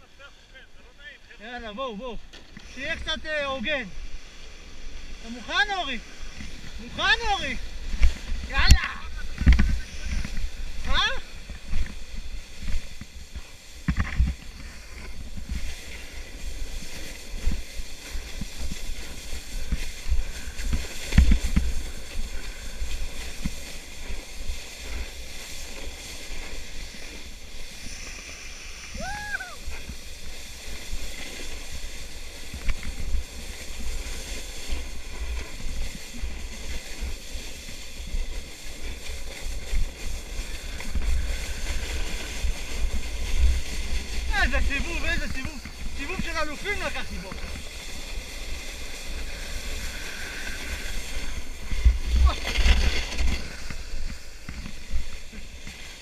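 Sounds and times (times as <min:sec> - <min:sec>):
sled scraping on snow: 0:00.0 - 0:56.0
wind rumble on microphone: 0:02.5 - 0:56.0.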